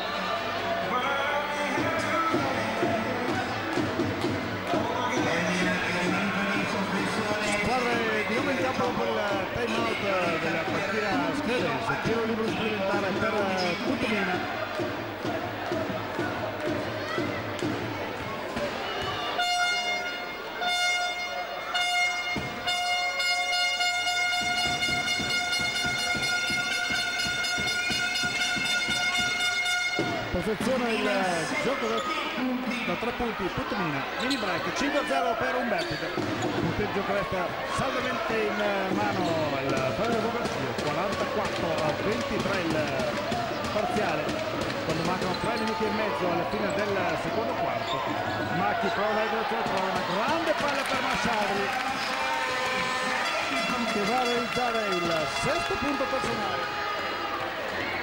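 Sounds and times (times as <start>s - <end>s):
crowd voices in a large hall: 0.0s - 58.0s
basketballs bouncing: 1.8s - 19.4s, 22.1s - 31.2s, 35.6s - 56.4s.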